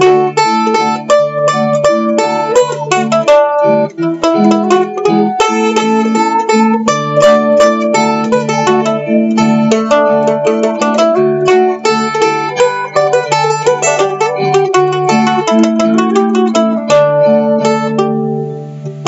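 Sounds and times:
mandolin strumming: 0:00.0 - 0:19.0.

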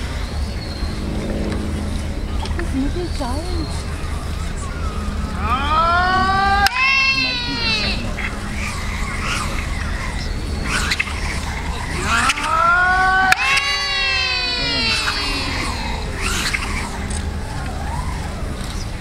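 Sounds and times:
steady low rumble: 0:00.0 - 0:19.0.

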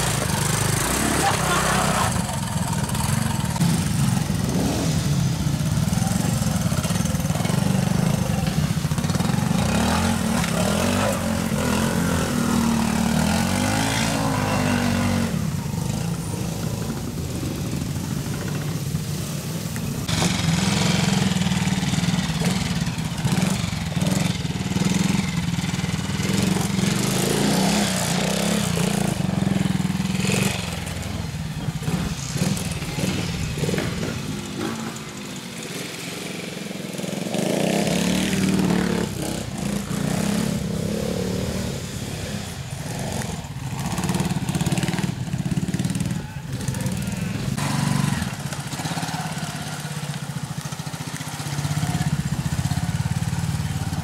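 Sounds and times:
motorcycle engines revving: 0:00.0 - 0:54.0.

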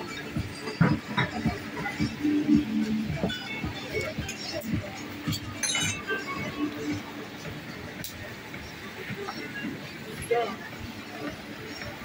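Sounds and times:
background music: 0:00.0 - 0:12.0
drinkware clinking on counter: 0:05.3 - 0:06.2.

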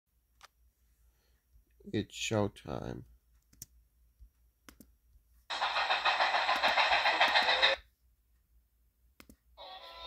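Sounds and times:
steam locomotive running: 0:05.5 - 0:07.8.

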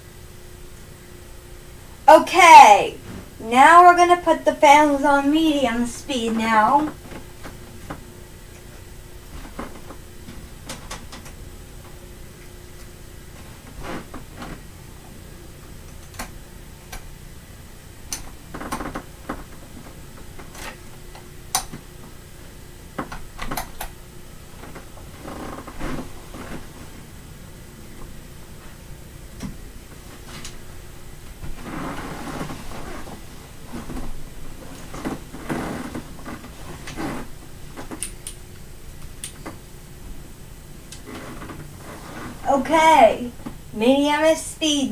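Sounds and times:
electric fans rushing air: 0:00.0 - 0:44.9
rustling on a bed: 0:31.4 - 0:37.4, 0:41.0 - 0:43.0.

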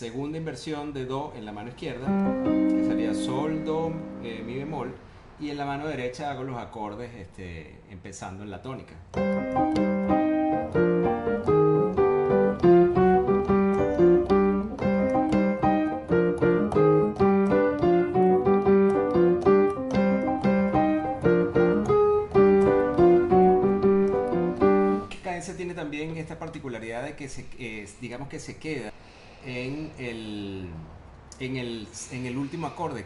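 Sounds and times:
digital piano playing salsa: 0:01.7 - 0:05.0, 0:09.1 - 0:26.6.

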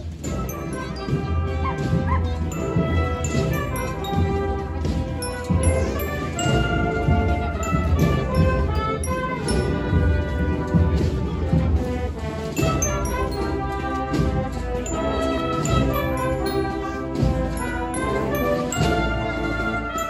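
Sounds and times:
low drum beat: 0:00.0 - 0:19.9
brass band chords: 0:00.0 - 0:20.0.

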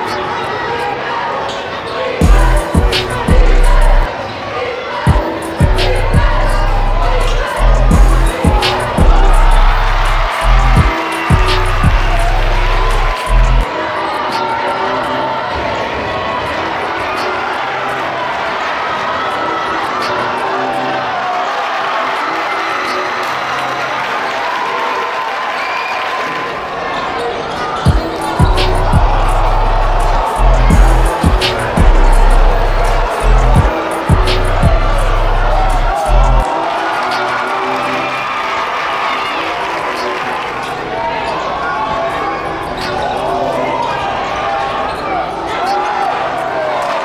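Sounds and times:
crowd chatter: 0:00.0 - 0:47.0
deep bass line music: 0:02.2 - 0:04.1, 0:05.1 - 0:13.6, 0:27.9 - 0:36.4
sneakers squeaking: 0:25.5 - 0:35.7, 0:40.6 - 0:46.5
heavy low thumps: 0:30.1 - 0:34.9.

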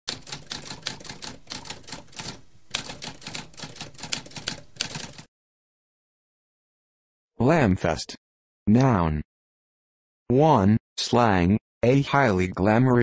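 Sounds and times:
typewriter typing: 0:00.1 - 0:05.3.

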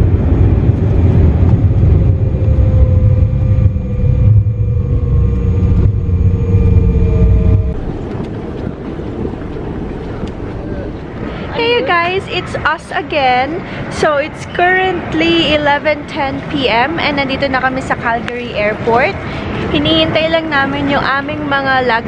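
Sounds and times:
faint falling tone: 0:00.0 - 0:09.6
airliner wheels and engines rumbling: 0:00.0 - 0:22.0.

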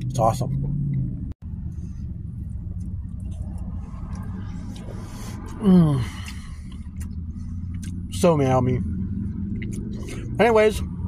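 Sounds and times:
vehicle engine idling: 0:00.0 - 0:11.0
faint chewing: 0:02.8 - 0:08.0.

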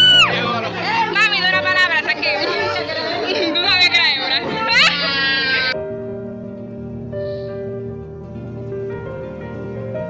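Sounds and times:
women talking and shouting excitedly: 0:00.0 - 0:05.8.

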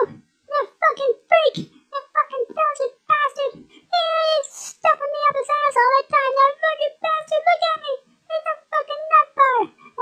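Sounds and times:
squeaky cartoon hamster voice: 0:00.0 - 0:10.0.

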